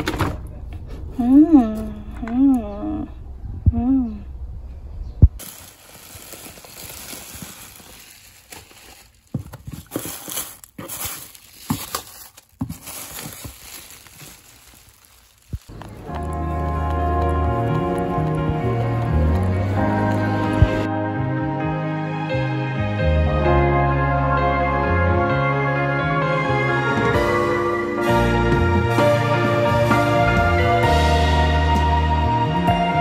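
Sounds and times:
bubble wrap crinkling: 5.4s - 20.9s
soft background music: 15.7s - 33.0s.

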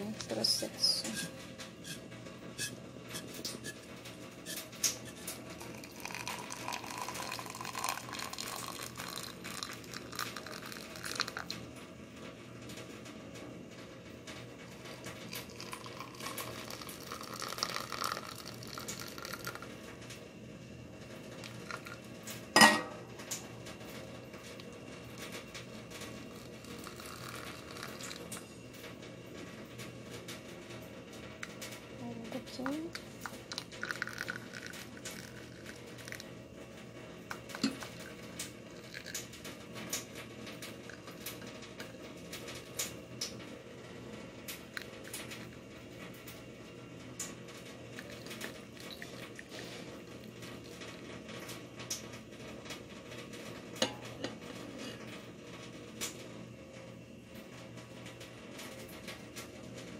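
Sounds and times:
water pouring into a glass: 5.0s - 11.6s, 14.8s - 19.8s, 21.4s - 22.1s, 26.3s - 28.4s, 32.9s - 36.3s, 37.3s - 39.3s, 47.9s - 49.8s.

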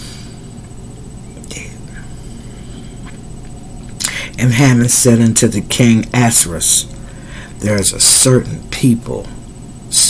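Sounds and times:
low background hum: 0.0s - 10.0s
woman breathing softly: 4.0s - 4.4s, 7.0s - 7.6s.

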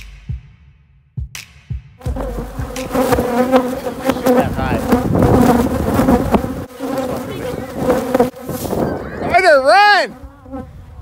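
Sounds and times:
honeybees buzzing: 2.0s - 11.0s.

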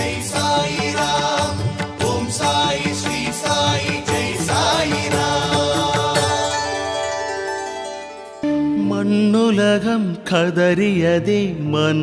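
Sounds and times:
person singing verses: 0.0s - 6.5s
steady percussion beat: 0.0s - 6.9s
devotional music: 0.0s - 12.0s.

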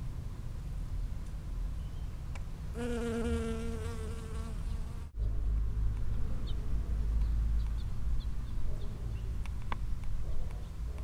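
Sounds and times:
bee wings buzzing: 2.8s - 5.1s.

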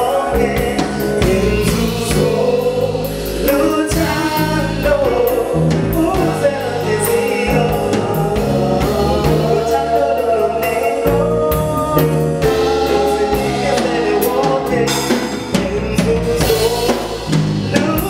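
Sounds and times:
women singing backing vocals: 0.0s - 17.0s
bass guitar: 0.0s - 18.0s
drums: 0.0s - 18.0s
man singing lead vocals: 0.0s - 18.0s
stage piano: 0.0s - 18.0s.

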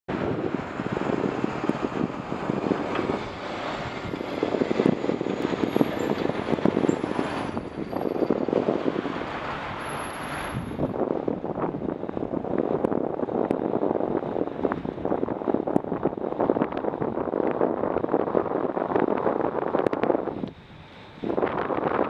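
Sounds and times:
truck passing close: 0.1s - 12.9s
road traffic noise: 0.1s - 22.0s
wind buffeting microphone: 0.1s - 22.0s.

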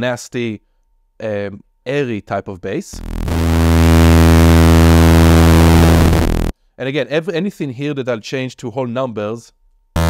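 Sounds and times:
synthesizer bass note: 3.0s - 6.5s.

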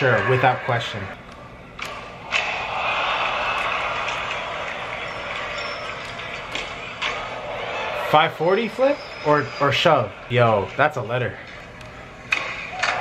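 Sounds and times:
crowd cheering: 0.0s - 1.2s, 1.8s - 13.0s.

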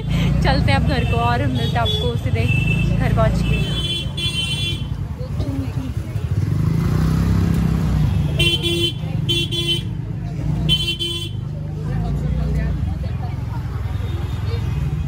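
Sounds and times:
crowd chatter: 0.0s - 15.0s
scooter and motorcycle engines: 0.0s - 15.0s
vehicle horn honking: 10.7s - 11.4s.

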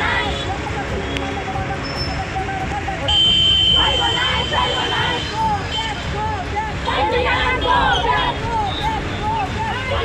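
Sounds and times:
women shouting and arguing: 3.7s - 10.0s.

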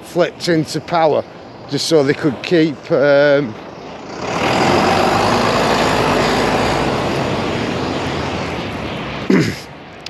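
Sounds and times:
large vehicle passing by: 0.2s - 10.0s.

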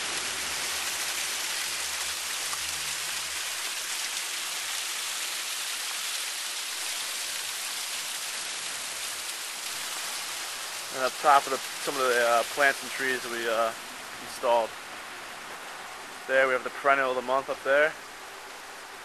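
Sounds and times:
waterfall splashing over rocks: 0.0s - 19.0s.

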